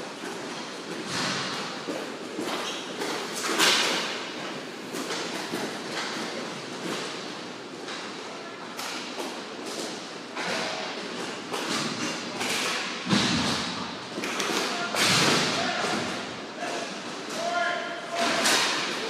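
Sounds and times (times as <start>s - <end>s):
clacks of sticks and puck: 0.0s - 19.0s.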